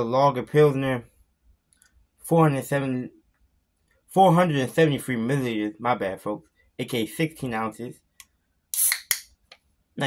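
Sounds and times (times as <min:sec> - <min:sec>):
can tab clicks: 0:08.2 - 0:09.6.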